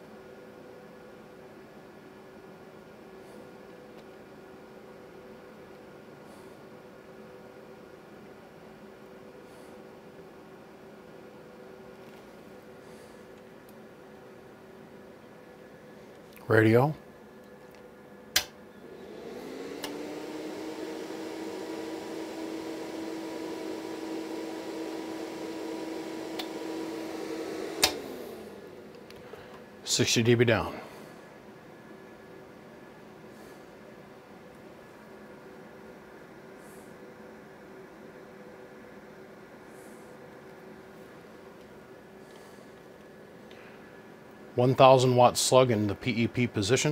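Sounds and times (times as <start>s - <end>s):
amplifier hum: 10.3s - 46.9s
amplifier relay click: 18.4s - 18.6s
steady low hiss: 28.7s - 46.9s.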